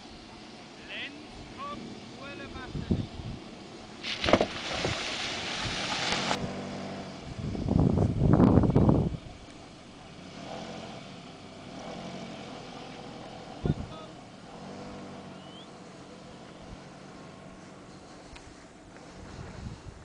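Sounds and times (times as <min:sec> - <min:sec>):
car engine running at low revs: 0:00.0 - 0:20.0.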